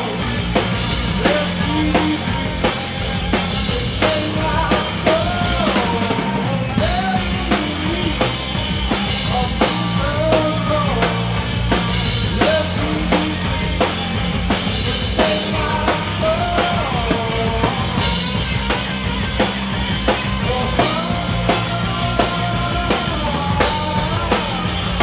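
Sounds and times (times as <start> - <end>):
bass guitar: 0.0 - 25.0
distorted electric guitars: 0.0 - 25.0
drum kit beat: 0.0 - 25.0.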